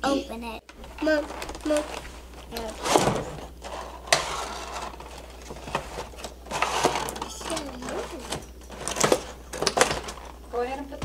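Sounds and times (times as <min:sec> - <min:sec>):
packaging rustling and scraping: 0:00.7 - 0:10.6.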